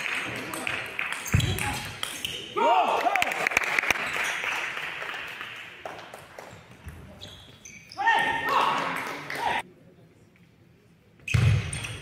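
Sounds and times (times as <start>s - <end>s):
voices echoing in a hall: 0.0s - 5.9s, 6.6s - 11.2s.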